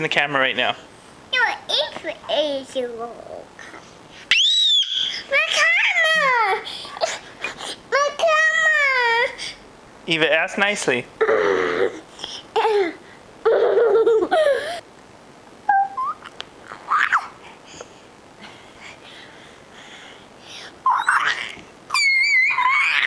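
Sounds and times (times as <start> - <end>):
girl laughing: 12.6 - 14.8
girl babbling and squeaking: 15.7 - 17.4, 20.8 - 23.0.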